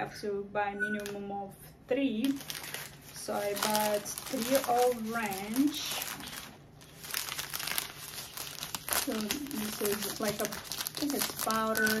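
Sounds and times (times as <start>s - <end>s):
plastic pouches crinkling: 2.2s - 12.0s.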